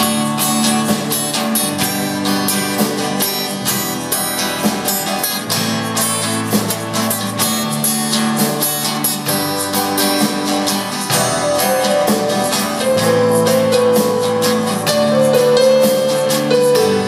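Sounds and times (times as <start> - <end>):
bass: 0.0 - 17.0
drum kit steady beat: 0.0 - 17.0
strummed acoustic guitars: 0.0 - 17.0.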